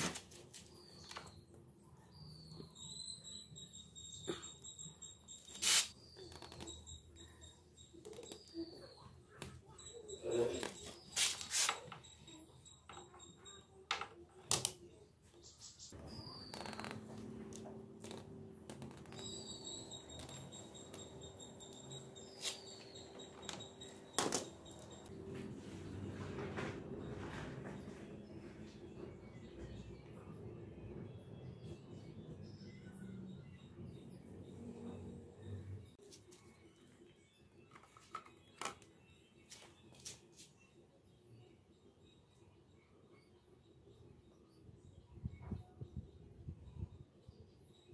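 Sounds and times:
thin high chirps: 18.0 - 25.1.

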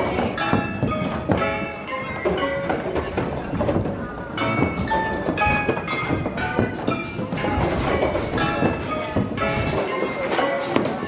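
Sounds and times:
arcade machine knocks and thuds: 0.0 - 11.0
bell-like chiming music: 0.2 - 3.2, 4.4 - 11.0.

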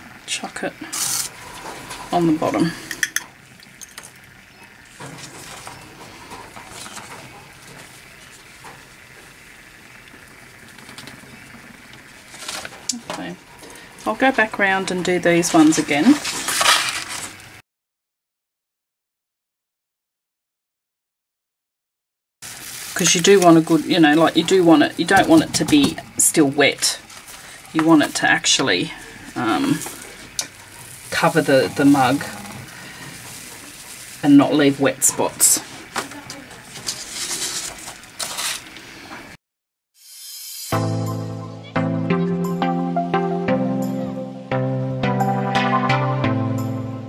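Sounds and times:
paper rustling and crinkling: 4.8 - 9.2, 12.0 - 12.9, 15.4 - 17.6, 22.4 - 26.0, 27.0 - 28.2, 28.8 - 38.8
paper sliding across table: 15.6 - 17.5, 36.6 - 39.3.

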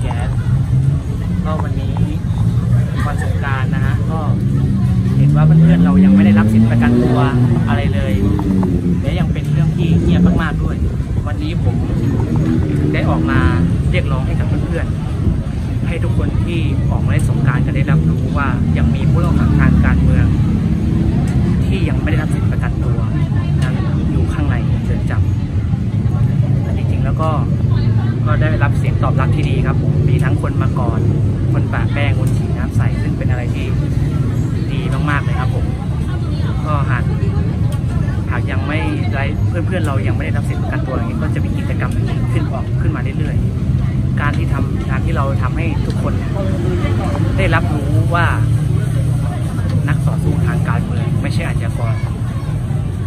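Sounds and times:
man speaking: 0.0 - 0.6, 1.2 - 15.0, 15.8 - 25.3, 26.5 - 35.8, 36.5 - 37.4, 38.2 - 48.8, 49.7 - 52.0
passers-by voices: 0.0 - 53.0
street traffic rumble: 0.0 - 53.0.

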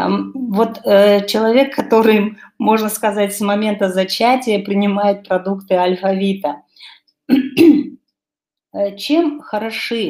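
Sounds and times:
woman clearing her throat: 7.3 - 8.0.

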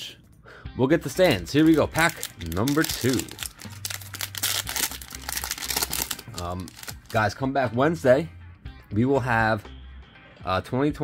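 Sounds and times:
plastic wrapper crinkling and tearing: 1.5 - 7.3.

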